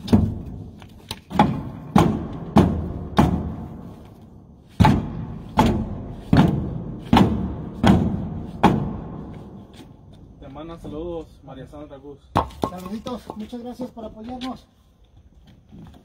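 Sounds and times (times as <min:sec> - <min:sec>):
stone hammering metal door: 0:01.3 - 0:03.7, 0:04.8 - 0:09.2.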